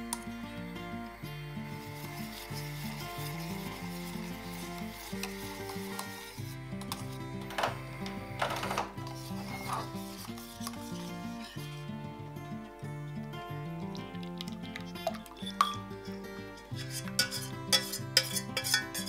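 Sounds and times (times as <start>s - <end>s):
background music: 0.0s - 19.0s
wire whisk scraping a saucepan: 1.7s - 11.8s, 14.3s - 19.0s.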